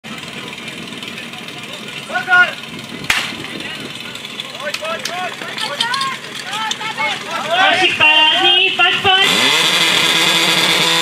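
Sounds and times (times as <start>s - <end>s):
starter's pistol shot: 3.1s - 3.4s
person shouting a call: 5.1s - 9.5s.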